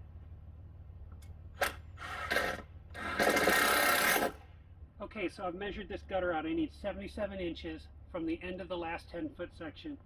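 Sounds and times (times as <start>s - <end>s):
tape measure blade retracting: 1.2s - 4.4s
tape measure rasp: 1.6s - 4.5s.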